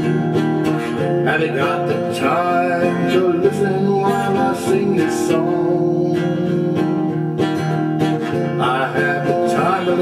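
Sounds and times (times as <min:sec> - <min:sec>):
person singing: 0:00.0 - 0:07.4, 0:08.3 - 0:10.0
acoustic guitar strumming: 0:00.0 - 0:10.0.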